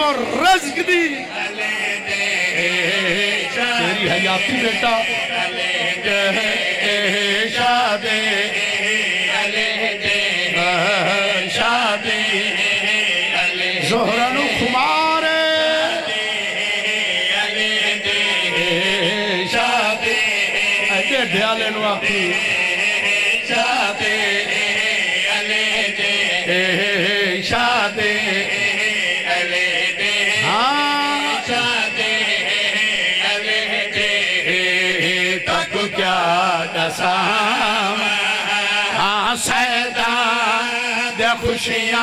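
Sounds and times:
men singing chanted refrain: 0.0s - 42.0s.

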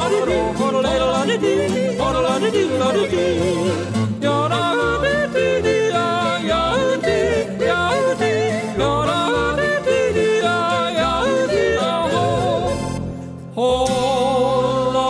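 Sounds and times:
person yodeling: 0.0s - 13.0s
instrumental backing: 0.0s - 15.0s.

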